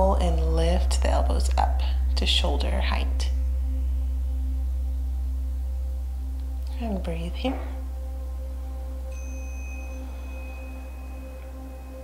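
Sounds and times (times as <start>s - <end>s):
high sustained tone: 0.0s - 12.0s
low drone with held tones: 0.0s - 12.0s.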